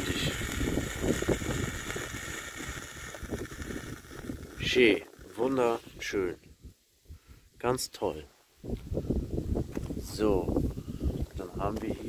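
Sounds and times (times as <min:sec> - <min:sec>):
flare hissing: 0:00.0 - 0:06.2
wind buffeting microphone: 0:00.0 - 0:07.4, 0:08.6 - 0:12.0.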